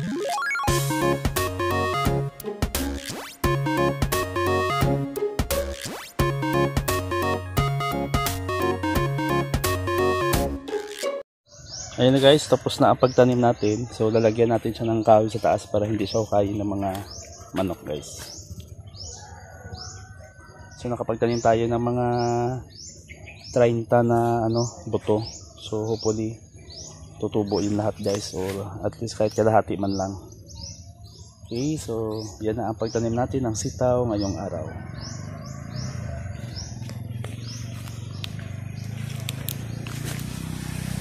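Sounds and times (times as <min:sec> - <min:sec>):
small birds chirping: 0:11.5 - 0:41.0.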